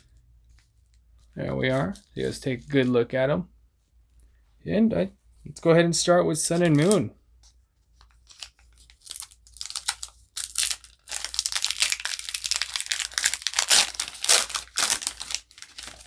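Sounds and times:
foil wrapper crinkling: 8.1 - 16.0
foil wrapper tearing: 8.2 - 16.0.

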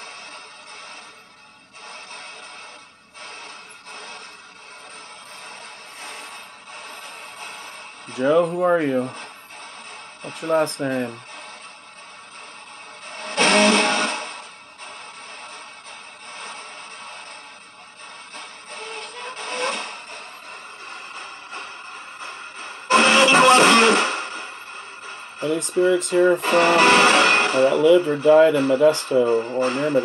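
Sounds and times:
radio static hiss: 0.0 - 30.0
snatches of radio music: 0.0 - 30.0.

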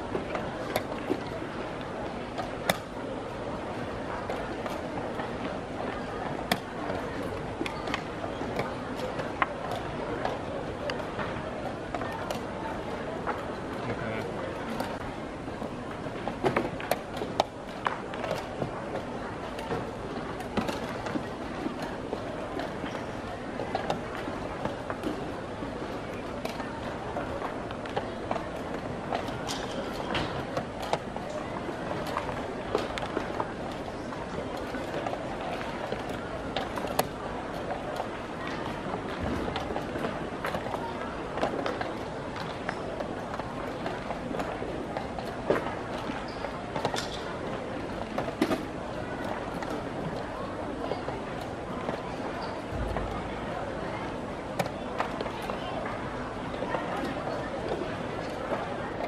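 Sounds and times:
background murmur: 0.0 - 59.0
steady background noise: 0.0 - 59.0.

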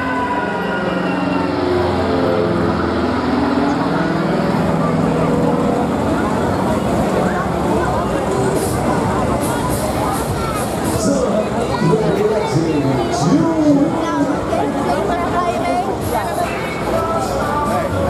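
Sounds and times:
fairground noise: 0.0 - 18.0.

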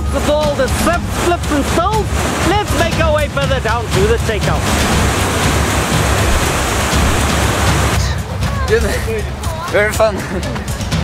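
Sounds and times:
whitewater rapids rushing: 0.0 - 10.1.

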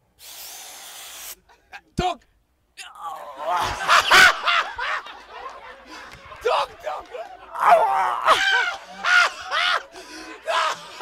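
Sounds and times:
breath drawn through face mask: 0.2 - 1.4.

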